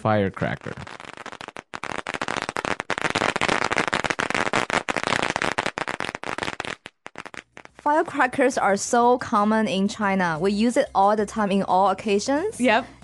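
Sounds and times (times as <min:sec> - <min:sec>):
firecrackers banging: 0:00.4 - 0:07.8.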